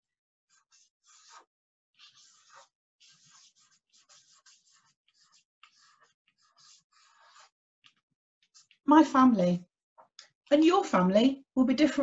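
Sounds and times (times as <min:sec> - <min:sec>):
marker pen scratching on card: 0:00.5 - 0:08.8.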